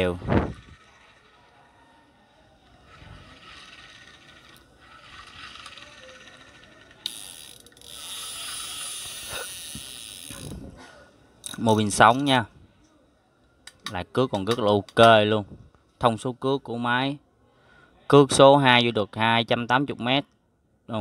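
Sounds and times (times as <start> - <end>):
fishing reel whirring: 0.5 - 1.5, 2.6 - 10.8.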